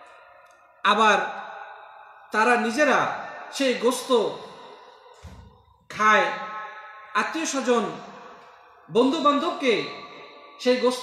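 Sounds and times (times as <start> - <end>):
man's voice echoing: 0.0 - 11.0
soft low thump: 5.2 - 5.6.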